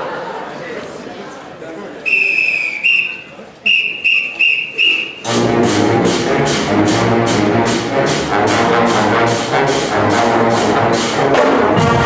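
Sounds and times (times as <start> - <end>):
whistle blasts: 2.1 - 5.4
pep band with brass and drums: 3.8 - 12.0.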